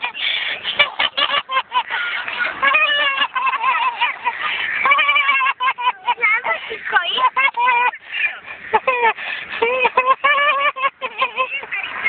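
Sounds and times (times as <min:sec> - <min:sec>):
woman laughing uncontrollably: 0:00.0 - 0:08.0, 0:08.7 - 0:12.0.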